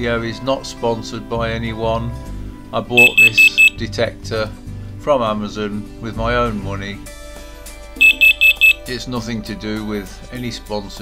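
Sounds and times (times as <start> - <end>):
alarm high-pitched beeps: 3.0 - 3.8, 8.0 - 8.9.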